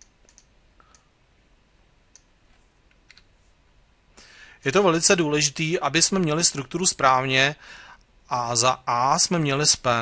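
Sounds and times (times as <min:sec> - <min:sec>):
faint mouse and keyboard clicks: 0:00.0 - 0:01.1, 0:02.1 - 0:03.3.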